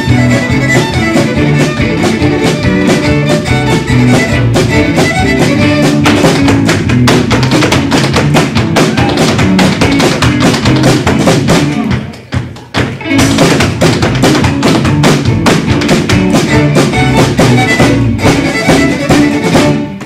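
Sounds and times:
fiddle tune: 0.0 - 8.4, 14.8 - 20.0
upright bass: 0.0 - 12.2, 12.9 - 20.0
feet tapping on stage: 0.0 - 20.0
snare drum: 13.1 - 20.0.

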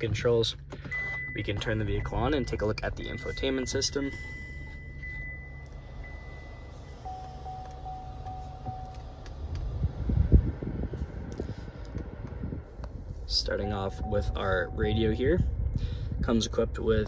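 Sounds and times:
car engine idling: 0.0 - 17.0
short electronic car chimes: 0.8 - 9.2, 13.6 - 15.2.

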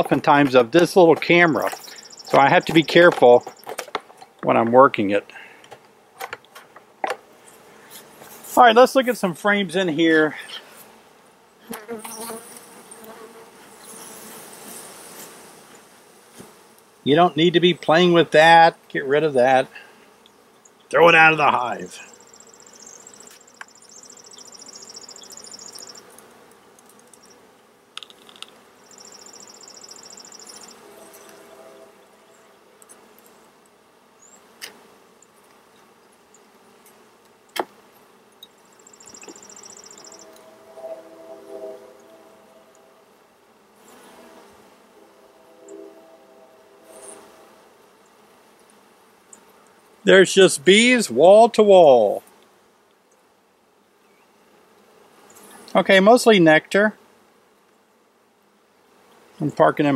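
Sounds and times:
honey bees buzzing: 0.0 - 59.9.

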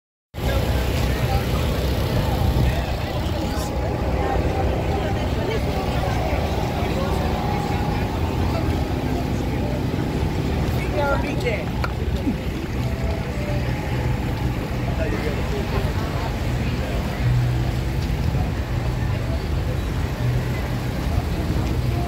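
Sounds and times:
crowd chatter: 0.4 - 22.0
low engine hum: 0.4 - 22.0.

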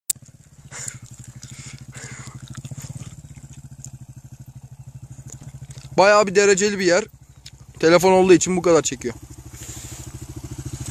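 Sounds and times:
motocross bike engine running: 0.1 - 10.9.

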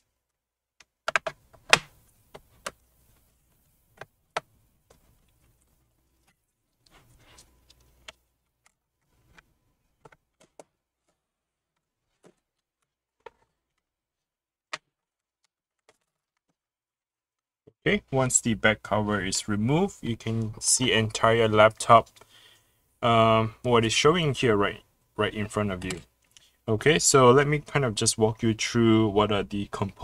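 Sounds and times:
rubbing and handling noise: 0.0 - 16.7.

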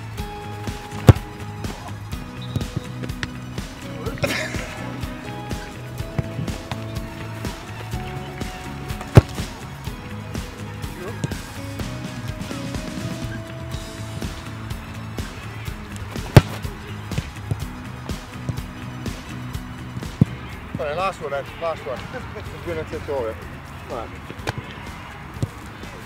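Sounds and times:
background music: 0.0 - 26.0
boot kicking ball thud: 0.3 - 19.2.

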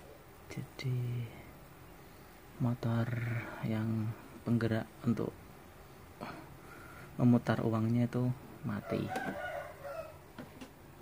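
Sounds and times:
rooster crowing: 8.8 - 10.5.

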